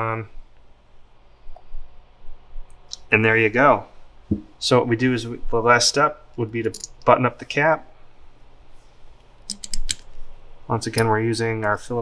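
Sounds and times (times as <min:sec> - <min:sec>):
small sharp screw clicks: 0:09.5 - 0:10.0.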